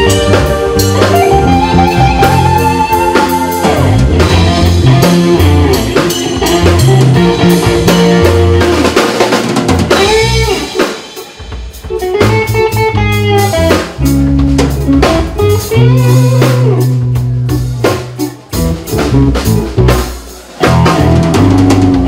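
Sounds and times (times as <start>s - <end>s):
bass guitar: 0.0s - 22.0s
drum kit: 0.0s - 22.0s
electric guitar: 0.0s - 22.0s
electric keyboard: 0.0s - 22.0s.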